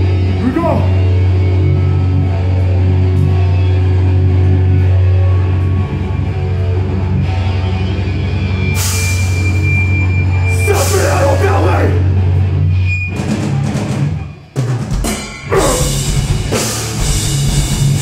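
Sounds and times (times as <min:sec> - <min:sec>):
heavy metal band playing: 0:00.0 - 0:18.0.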